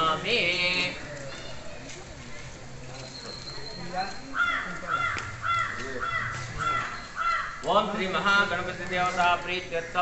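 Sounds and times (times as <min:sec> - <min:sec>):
faint crowd voices: 0:00.0 - 0:10.0
crow cawing: 0:04.3 - 0:07.8.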